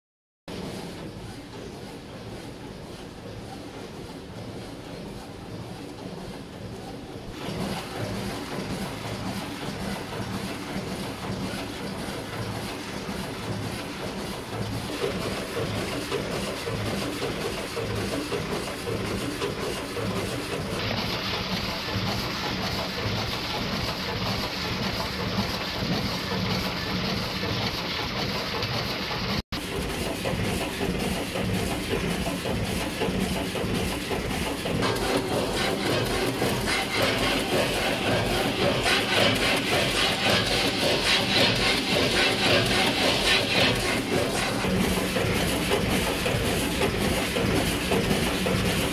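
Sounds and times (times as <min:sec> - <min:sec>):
machine mechanical clatter: 0:00.5 - 0:48.9.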